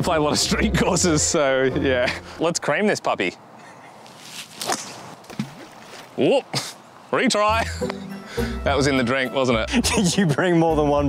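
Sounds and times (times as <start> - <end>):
golf club swish and strike: 4.1 - 6.1.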